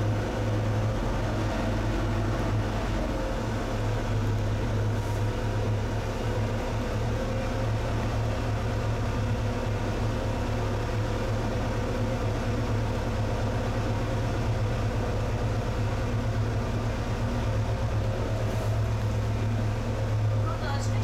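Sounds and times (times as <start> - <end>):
boat engine humming: 0.0 - 21.0.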